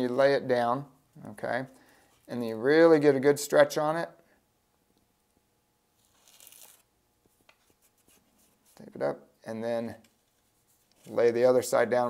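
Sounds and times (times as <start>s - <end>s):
tape rustling: 6.0s - 8.9s.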